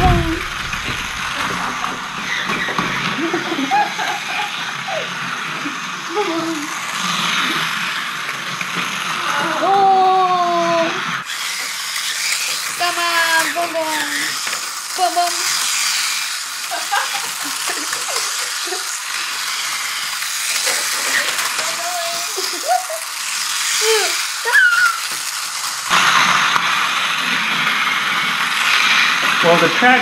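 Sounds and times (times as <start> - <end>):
toy electric motor whirring: 0.0 - 30.0
wheels rattling on plastic track: 0.0 - 30.0
child's drawn-out voice: 9.2 - 11.0, 12.7 - 15.5, 21.2 - 22.6, 23.7 - 25.1.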